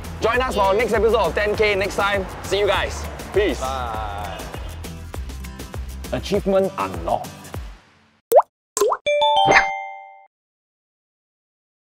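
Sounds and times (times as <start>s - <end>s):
bell-like chime notes: 9.1s - 10.3s.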